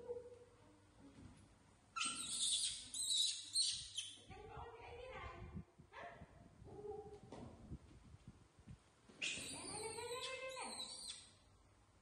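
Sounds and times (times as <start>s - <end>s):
baby monkey screaming: 2.0s - 4.1s, 9.2s - 11.3s.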